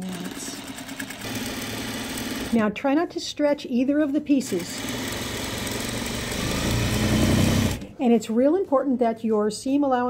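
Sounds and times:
sewing machine running: 0.0s - 2.6s, 4.5s - 7.9s.

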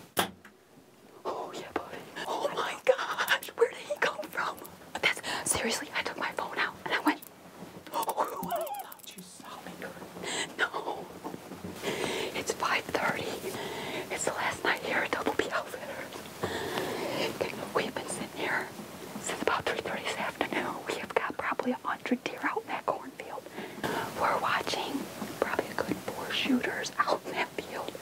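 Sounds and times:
woman whispering: 1.2s - 7.3s, 7.9s - 11.1s, 12.3s - 16.2s, 17.0s - 28.0s.

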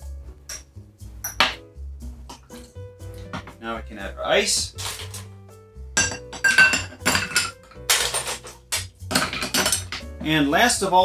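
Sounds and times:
ice scooped into a glass: 4.8s - 5.2s
scoop clinking against metal and glass: 4.8s - 5.3s, 6.0s - 10.1s.

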